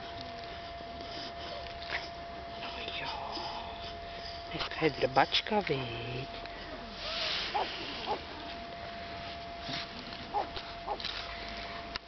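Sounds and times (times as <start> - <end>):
dog whining in high squeaks: 10.3 - 11.1.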